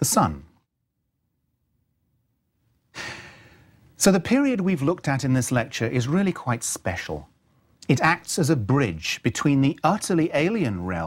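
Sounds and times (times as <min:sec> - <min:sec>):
man drawing sharp breath: 0:02.9 - 0:03.8.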